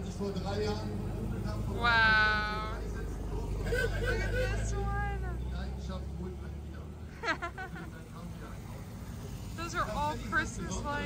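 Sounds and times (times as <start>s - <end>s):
van engine driving past: 0.0s - 11.0s
person laughing wow: 3.5s - 4.9s, 7.2s - 7.9s.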